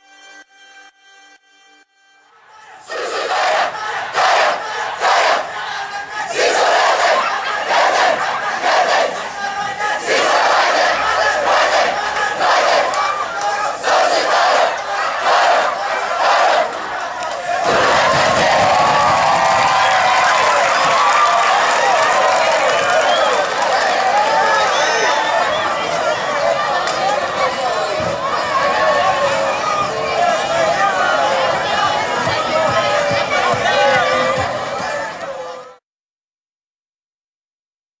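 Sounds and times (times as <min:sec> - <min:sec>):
many voices shouting: 0:02.3 - 0:35.8
team shouting war cry: 0:02.3 - 0:35.8.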